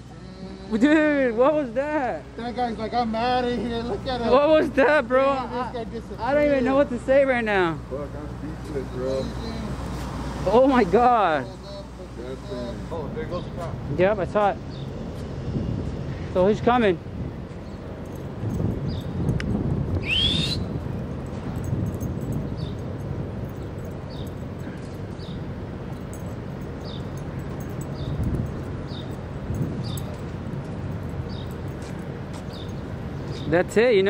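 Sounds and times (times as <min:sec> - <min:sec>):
bird rising call: 0:20.0 - 0:20.7
short high bird chirps: 0:20.0 - 0:20.7.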